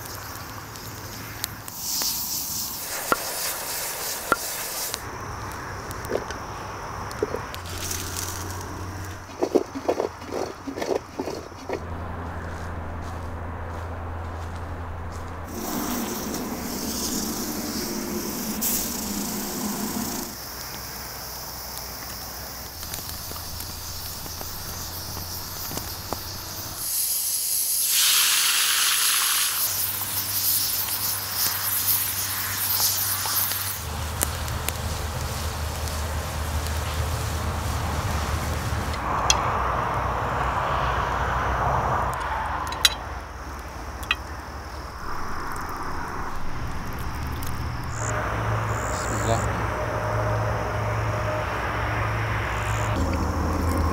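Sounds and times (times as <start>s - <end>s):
potatoes sizzling in oil: 0.0s - 5.1s, 7.6s - 9.3s, 15.5s - 39.0s
fire noise: 0.0s - 53.9s
loud hiss: 1.2s - 5.4s, 7.6s - 9.1s, 15.5s - 39.2s.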